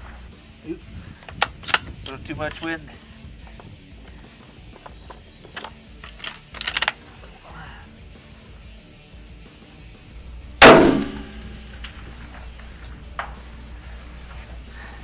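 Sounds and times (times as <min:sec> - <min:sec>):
metallic clicks: 0:05.5 - 0:07.0
rifle shot with echo: 0:10.6 - 0:12.4.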